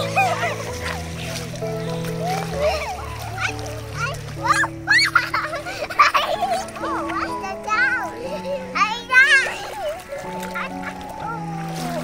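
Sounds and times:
background music with held notes: 0.0s - 12.0s
children squealing and shouting: 0.0s - 12.0s.

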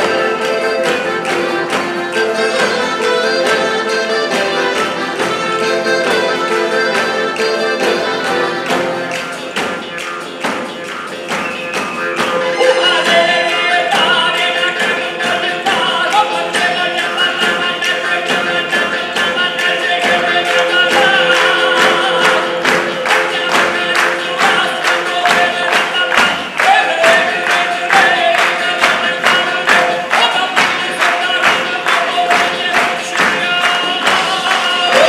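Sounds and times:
frame drums beating: 0.0s - 35.0s
voices singing together: 12.4s - 35.0s.

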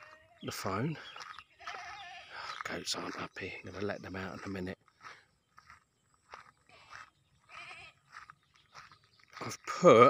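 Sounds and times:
goats bleating: 1.6s - 2.6s, 6.8s - 8.1s.

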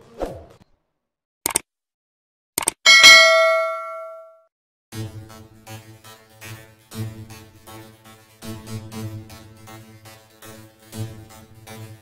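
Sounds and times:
quick clicks: 2.6s - 2.8s
notification bell ding: 2.9s - 4.3s.

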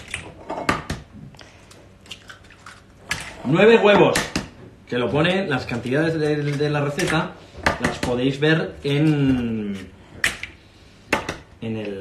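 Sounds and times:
eggs cracked against metal bowl: 2.0s - 4.5s, 6.9s - 8.2s.

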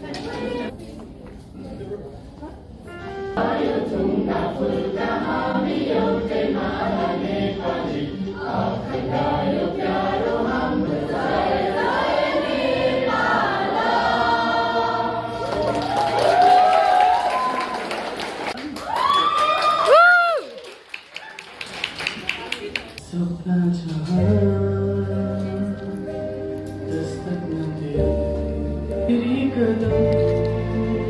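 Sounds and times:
group of voices singing: 3.4s - 15.6s.

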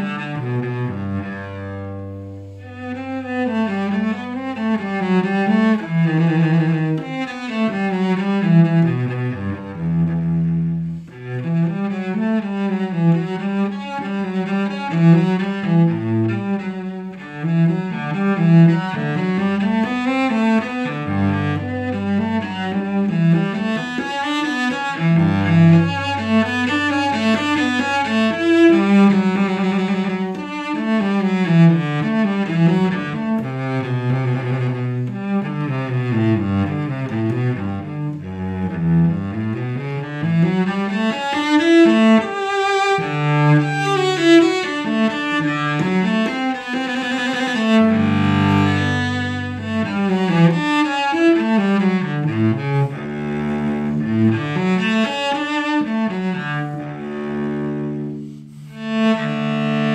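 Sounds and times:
solo cello bowed: 0.0s - 59.9s.

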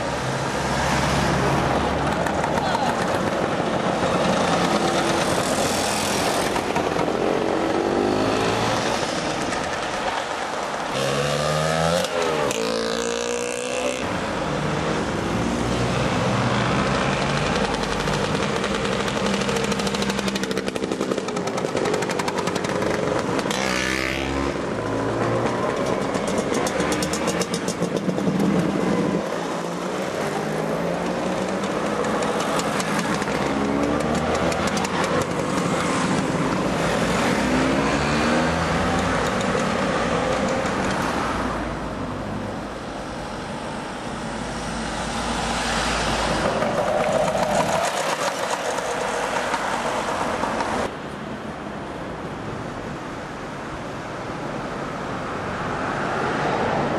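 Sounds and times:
scooters riding past: 0.0s - 14.4s, 15.0s - 41.9s, 43.7s - 51.0s
scooter engines revving: 0.0s - 50.9s.

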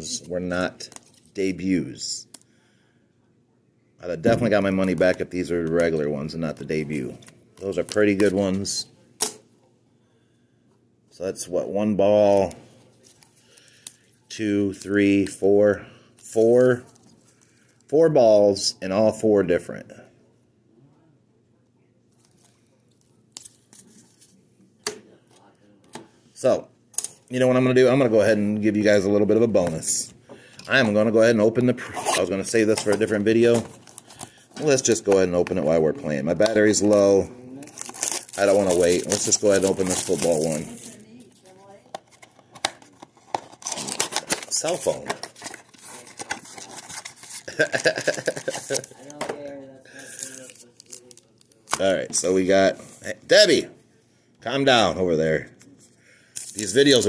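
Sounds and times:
packaging being torn open: 37.6s - 41.0s, 42.6s - 49.1s
person laughing: 47.5s - 49.0s.

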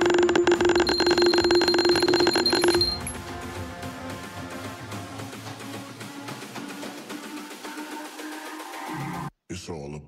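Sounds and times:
alarm clock bell ringing: 0.6s - 3.2s
background music: 0.8s - 9.3s.

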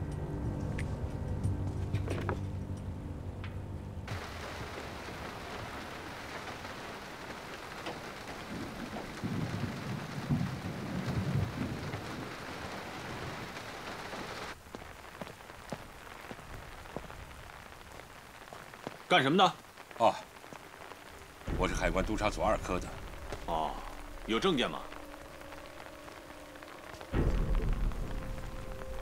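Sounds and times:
steady rain falling: 0.0s - 29.0s
low rumble of thunder: 4.0s - 13.8s, 21.4s - 29.0s.

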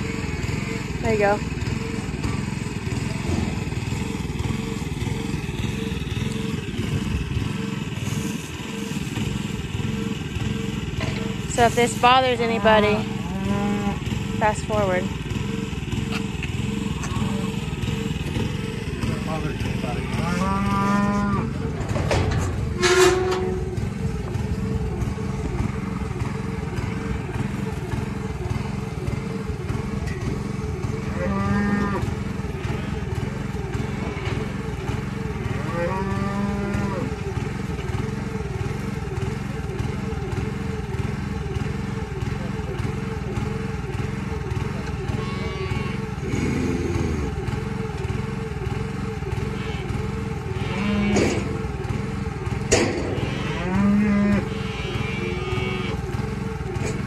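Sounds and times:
small gas engine running: 0.0s - 57.0s
cattle mooing: 12.9s - 14.1s, 20.0s - 23.7s, 31.0s - 33.1s, 33.8s - 34.6s, 35.3s - 37.2s, 45.1s - 47.4s, 49.4s - 51.7s, 52.7s - 56.1s.

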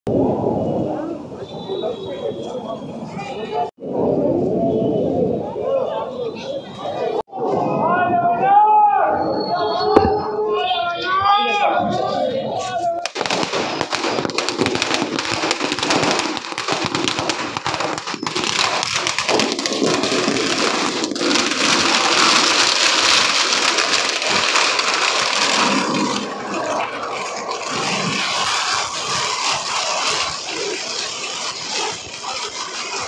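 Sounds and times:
firecrackers crackling: 11.9s - 33.0s.

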